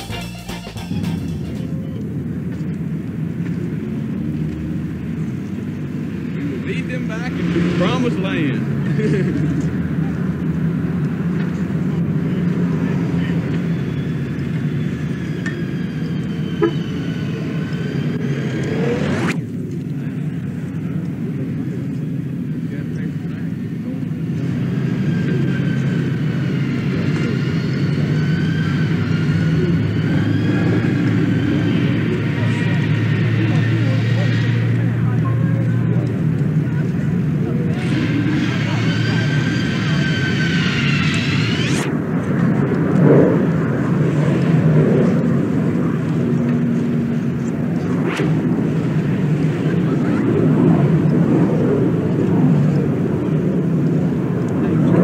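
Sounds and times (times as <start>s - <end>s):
aircraft high whine: 0.0s - 55.0s
traffic rumble: 0.0s - 55.0s
indistinct voices: 22.6s - 52.9s.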